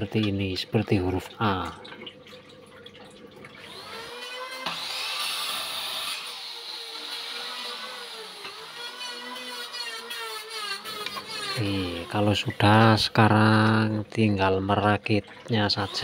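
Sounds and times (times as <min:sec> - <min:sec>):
miter saw motor whining: 0:03.7 - 0:12.1.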